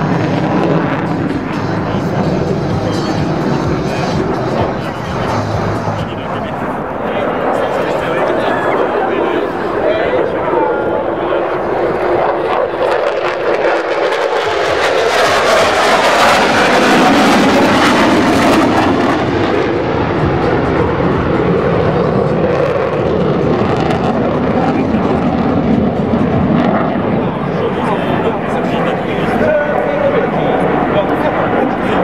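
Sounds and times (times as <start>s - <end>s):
fighter jet engine roar: 0.0s - 32.0s.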